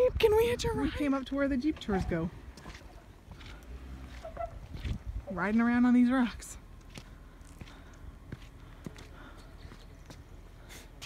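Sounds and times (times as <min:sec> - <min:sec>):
low steady rumble: 0:00.0 - 0:11.0
footsteps scuffing on rock: 0:02.6 - 0:05.0, 0:06.9 - 0:09.1.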